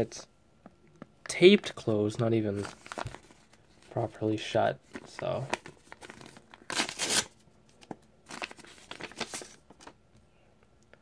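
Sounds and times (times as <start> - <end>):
paper envelope tearing: 2.6 - 3.3, 4.9 - 7.4, 8.3 - 9.9.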